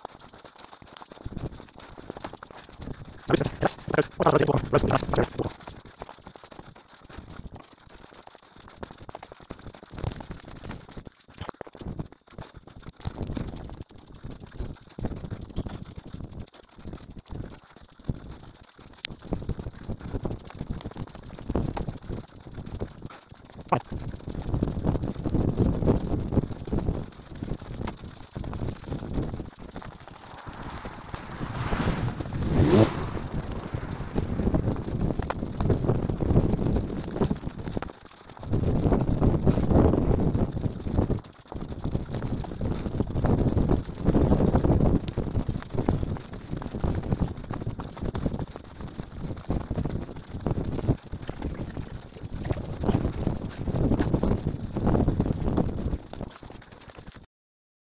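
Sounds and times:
wind buffeting microphone: 19.2s - 56.8s.

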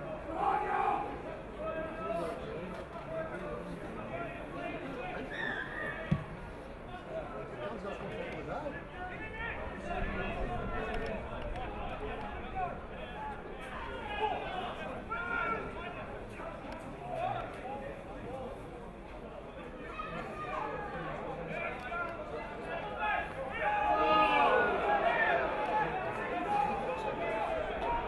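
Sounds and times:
spectators chatting: 0.0s - 28.0s
ball kicked thump: 6.1s - 6.3s.

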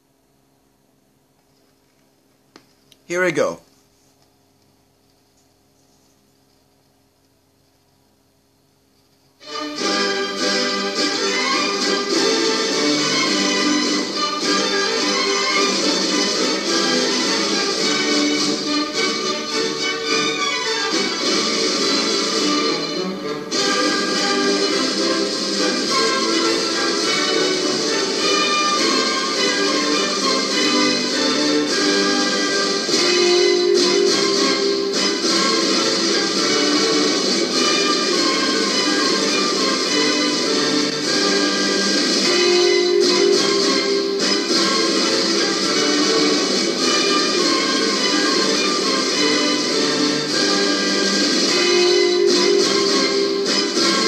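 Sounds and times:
music from a turntable: 23.4s - 54.0s.

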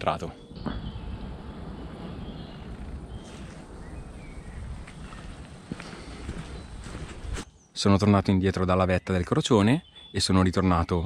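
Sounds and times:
low outdoor rumble: 0.0s - 7.4s
footsteps on leaves and dirt: 3.1s - 7.5s.

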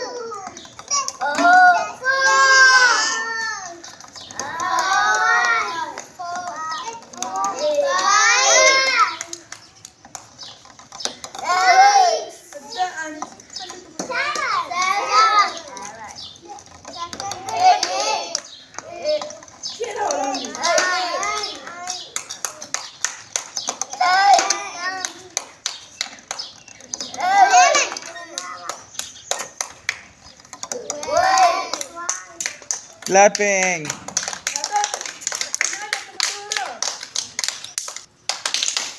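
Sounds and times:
child shouting: 0.0s - 3.8s, 7.5s - 9.2s, 24.0s - 25.2s
children shouting and chattering: 0.0s - 38.0s
sharp taps and knocks: 3.6s - 35.6s.

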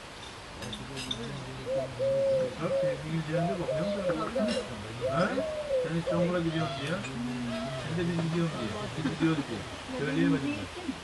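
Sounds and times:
low voices talking: 0.8s - 11.0s
dove cooing: 1.5s - 8.8s.

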